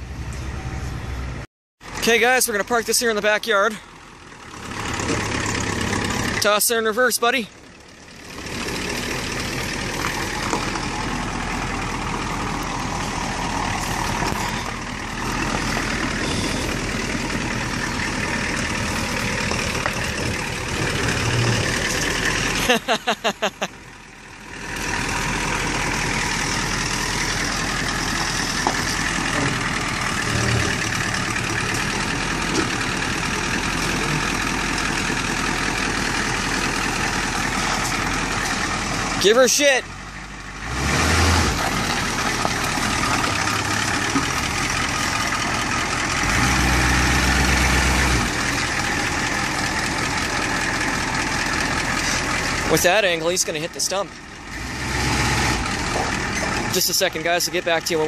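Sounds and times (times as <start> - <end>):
van engine running: 0.0 - 58.0
person laughing: 22.6 - 23.8.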